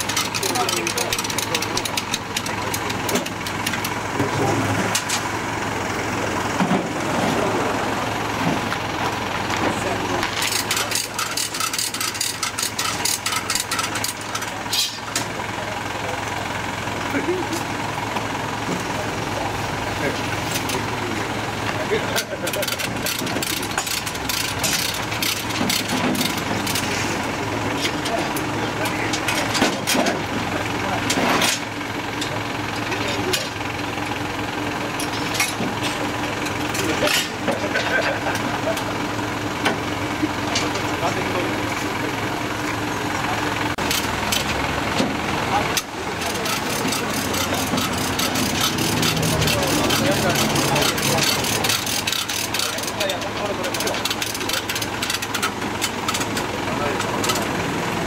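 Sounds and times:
people talking: 0:00.0 - 0:03.3, 0:04.2 - 0:05.0, 0:09.5 - 0:17.7, 0:18.6 - 0:23.8, 0:26.8 - 0:31.6, 0:32.2 - 0:33.6, 0:36.7 - 0:39.0, 0:40.2 - 0:43.8, 0:45.3 - 0:55.4, 0:56.1 - 0:57.9
truck engine idling: 0:00.0 - 0:58.0.

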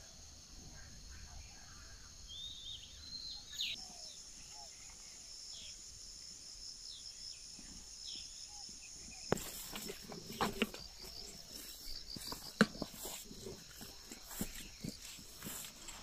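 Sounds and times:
insects chorus: 0:00.0 - 0:16.0
bird chirps: 0:01.1 - 0:05.8.

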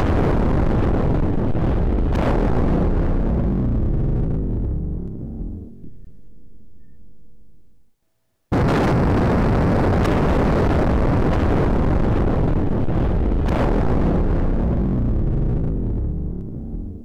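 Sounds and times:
building collapsing roar: 0:00.0 - 0:06.0, 0:08.5 - 0:17.0.

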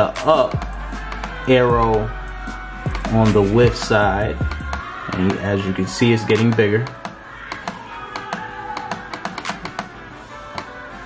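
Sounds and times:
background music: 0:00.0 - 0:11.0
laptop clicks: 0:06.4 - 0:09.9.

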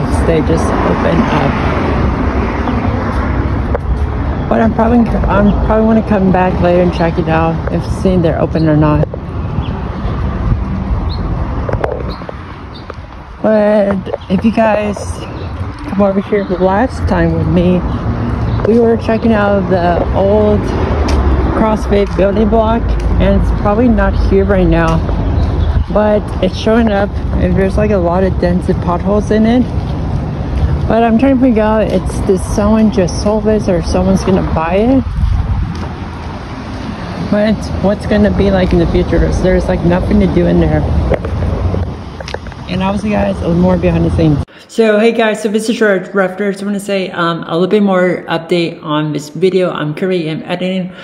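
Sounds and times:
wind buffeting microphone: 0:00.0 - 0:44.5
steady low rumble: 0:13.1 - 0:36.4.

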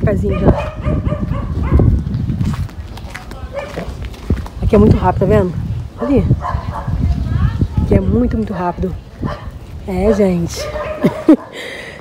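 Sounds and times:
dog barking: 0:00.2 - 0:02.0, 0:03.5 - 0:03.9, 0:06.0 - 0:07.0, 0:09.2 - 0:11.6.

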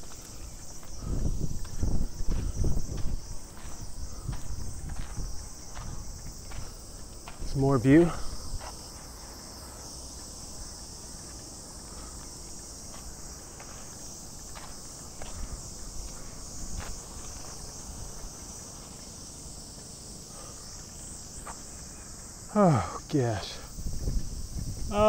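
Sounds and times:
cicadas droning: 0:00.0 - 0:25.0.

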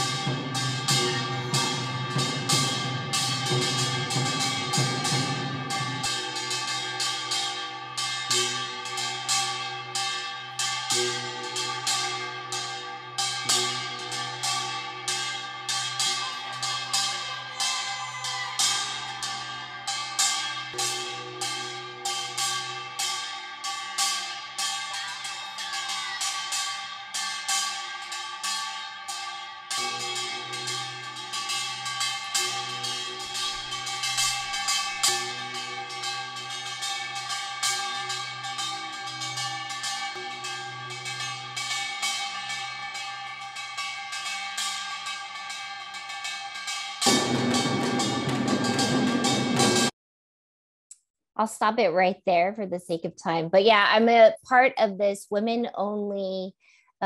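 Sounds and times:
metallic cymbal-like strikes: 0:00.0 - 0:49.9
sustained ringing tones: 0:00.0 - 0:49.9.

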